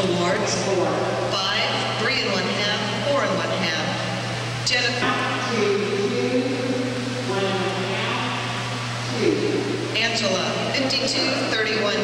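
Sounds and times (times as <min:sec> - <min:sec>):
indistinct echoing voices: 0:00.0 - 0:12.0
steady low hum: 0:00.0 - 0:12.0.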